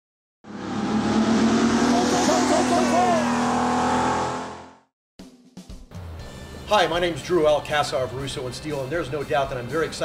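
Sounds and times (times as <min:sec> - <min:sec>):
race car engine at high revs: 0:00.4 - 0:04.9
tires squealing: 0:00.5 - 0:04.7.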